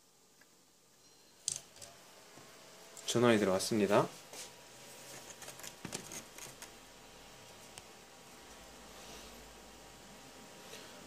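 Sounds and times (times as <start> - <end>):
computer fan whir: 0.0 - 11.0.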